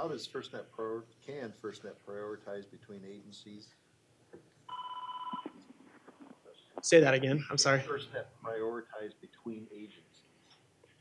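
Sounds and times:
telephone beep: 0:04.7 - 0:05.6.

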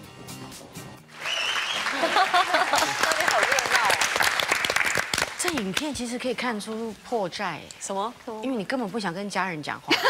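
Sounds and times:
applause: 0:01.1 - 0:05.9.

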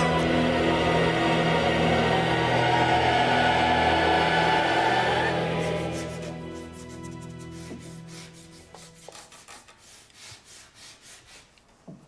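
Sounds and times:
pencil scratching on paper: 0:05.9 - 0:11.6.

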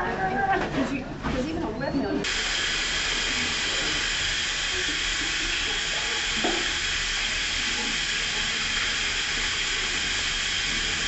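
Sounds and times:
faucet running: 0:02.2 - 0:11.0
water falling on washed hands: 0:02.2 - 0:11.0.

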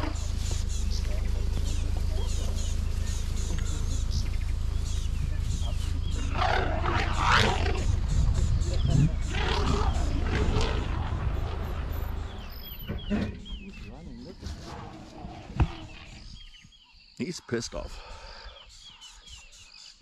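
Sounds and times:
steady low rumble: 0:00.0 - 0:16.5
elephant trumpeting: 0:06.2 - 0:08.1, 0:08.9 - 0:12.6.

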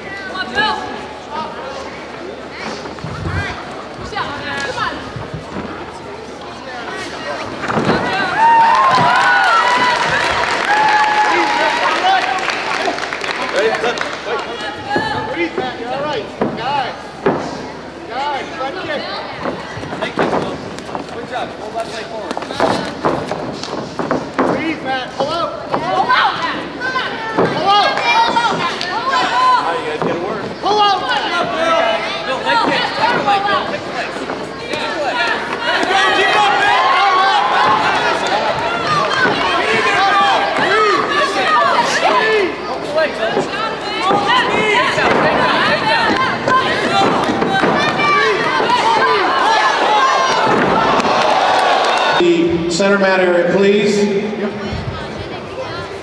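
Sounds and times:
crowd shouting and yelling: 0:00.0 - 0:56.0
spectators shouting: 0:34.7 - 0:52.4.

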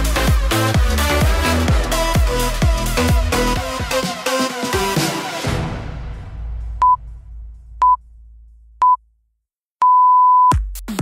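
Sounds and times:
electronic dance music: 0:00.0 - 0:05.8.

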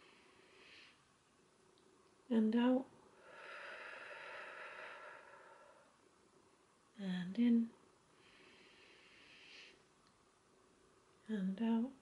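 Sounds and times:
woman exhaling slowly: 0:03.2 - 0:05.9.

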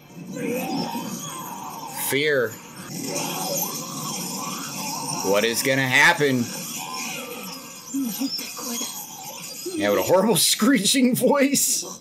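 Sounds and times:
voice-acted dialogue: 0:01.9 - 0:12.0.

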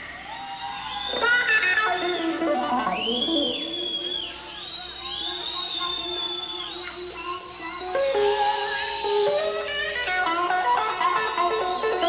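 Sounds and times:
electric guitar high bending note: 0:01.2 - 0:04.4, 0:05.8 - 0:12.0.

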